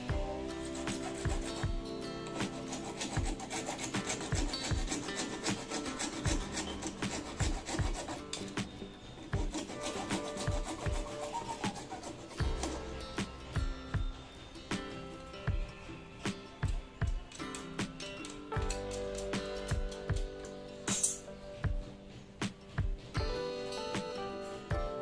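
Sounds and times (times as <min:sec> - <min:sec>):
hand saw cutting plastic pipe: 0:00.0 - 0:14.1, 0:17.2 - 0:21.4
faint background music: 0:00.0 - 0:25.0.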